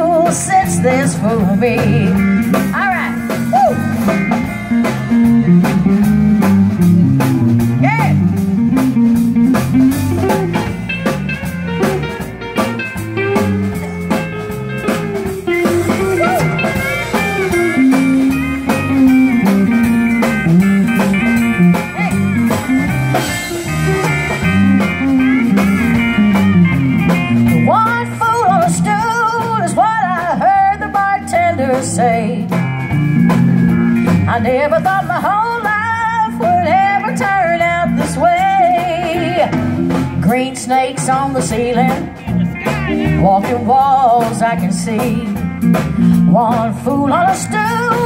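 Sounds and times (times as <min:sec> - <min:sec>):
bending electric guitar lead: 0:00.0 - 0:48.0
country band playing: 0:00.0 - 0:48.0.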